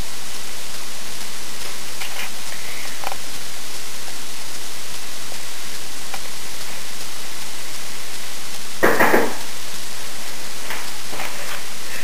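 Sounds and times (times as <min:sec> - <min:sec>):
camera recording hiss: 0:00.0 - 0:12.0.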